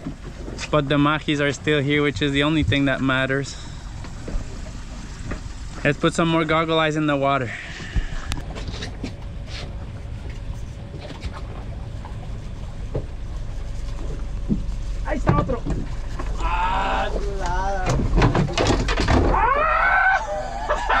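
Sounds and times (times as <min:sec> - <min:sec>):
wind and water around boat: 0:00.0 - 0:21.0
men calling out: 0:16.3 - 0:18.1.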